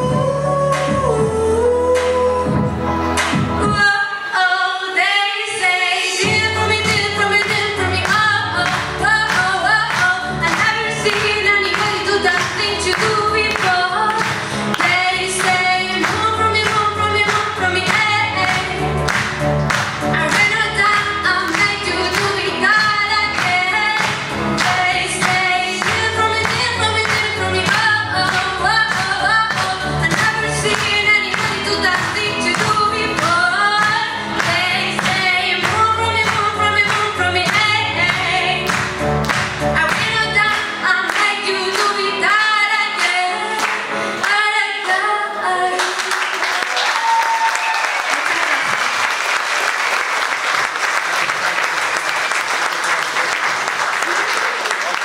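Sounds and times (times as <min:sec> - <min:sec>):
female choir singing pop song: 0:20.1 - 0:38.8.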